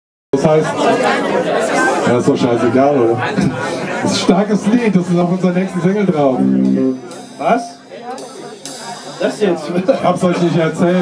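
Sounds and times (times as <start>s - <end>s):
bar crowd chatter: 0.3s - 11.0s
man speaking into a microphone: 0.4s - 1.0s, 2.0s - 8.6s, 9.2s - 11.0s.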